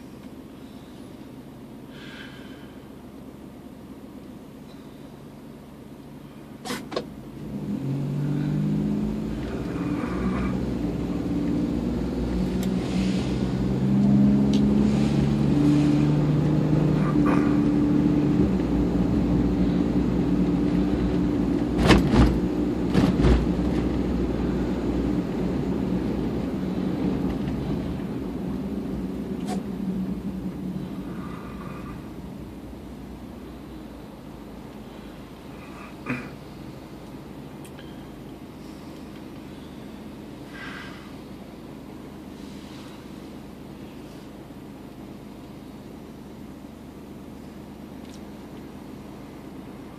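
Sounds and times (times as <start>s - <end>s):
car engine accelerating: 0.0s - 49.9s
road noise: 0.0s - 49.9s.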